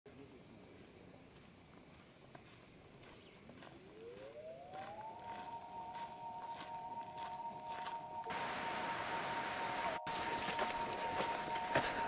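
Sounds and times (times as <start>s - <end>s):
electronic gliding tone: 3.9s - 12.0s
hiss: 8.3s - 10.8s.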